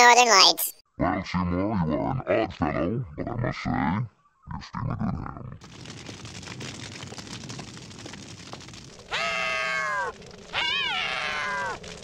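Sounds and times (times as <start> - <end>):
crackling hiss of fire: 5.6 - 12.0
high meows: 9.1 - 11.9.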